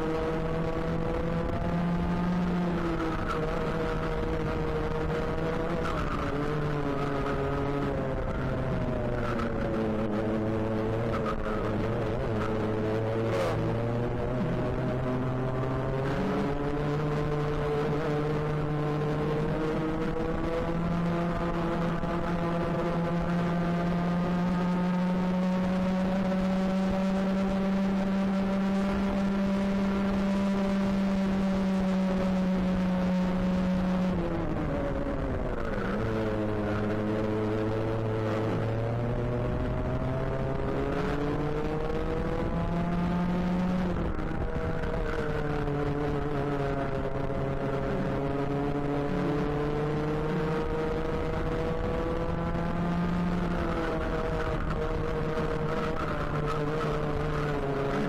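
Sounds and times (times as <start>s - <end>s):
racing kart engine at full throttle: 0.0s - 58.0s.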